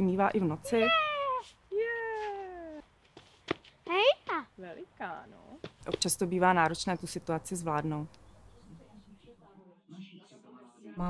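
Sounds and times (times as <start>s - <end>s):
child's rising squeal: 0.8s - 2.8s.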